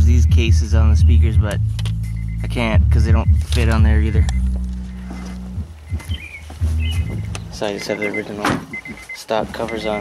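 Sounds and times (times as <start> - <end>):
faint bird chirps: 5.8 - 9.2.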